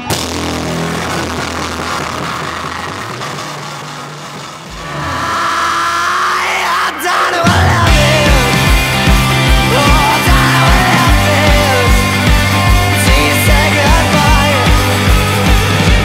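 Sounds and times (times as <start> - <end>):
rock music low chords: 0.0 - 5.5, 7.3 - 16.0
heavy drums: 0.0 - 16.0.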